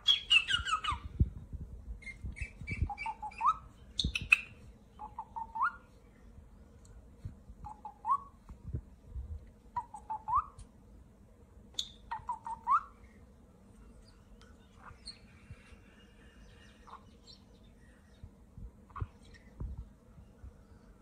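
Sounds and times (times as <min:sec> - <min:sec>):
parrot whistling: 0:00.0 - 0:01.0, 0:02.0 - 0:05.8, 0:09.8 - 0:10.6, 0:11.8 - 0:12.9
faint soft bird calls: 0:02.0 - 0:07.0, 0:11.7 - 0:21.0.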